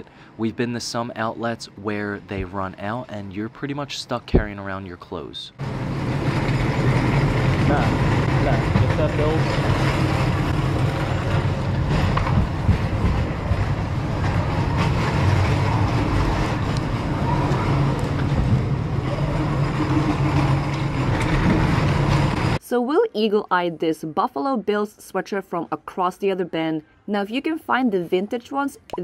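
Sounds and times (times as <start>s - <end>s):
carts rolling across floor: 5.6s - 22.6s.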